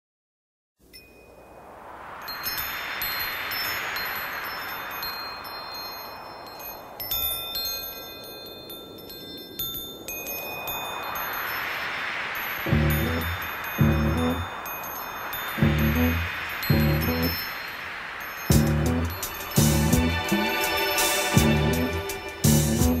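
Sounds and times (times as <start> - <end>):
wind chimes tinkling: 0.8 - 23.0
hissing whoosh: 1.3 - 9.1, 10.0 - 23.0.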